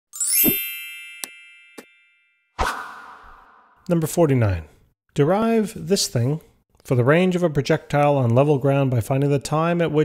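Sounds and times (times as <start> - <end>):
bright ringing chime: 0.1 - 2.6
rising sweep: 2.6 - 3.8.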